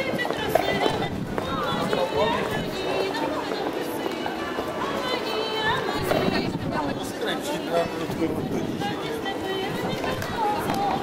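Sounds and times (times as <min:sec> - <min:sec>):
woman singing: 0:00.0 - 0:07.2, 0:08.4 - 0:11.0.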